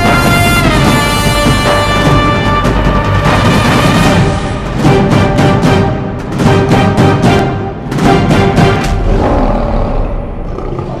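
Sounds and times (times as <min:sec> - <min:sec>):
lion roar: 0:09.0 - 0:11.0.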